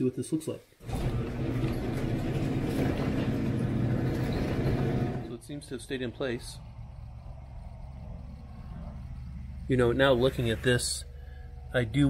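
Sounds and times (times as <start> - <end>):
garage door opener motor hum: 0.8 - 5.3.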